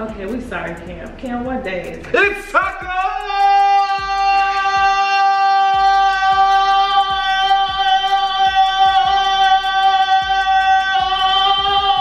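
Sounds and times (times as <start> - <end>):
young man singing long note: 3.1 - 12.0.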